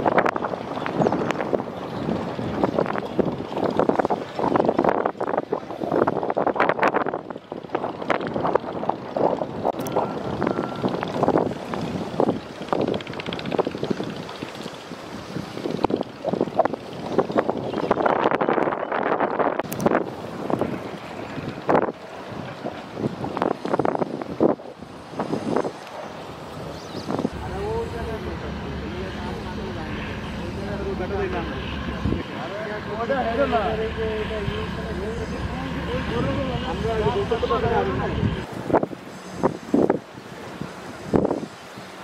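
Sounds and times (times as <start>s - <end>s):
wind buffeting microphone: 0.0s - 42.0s
low hum: 26.2s - 38.5s.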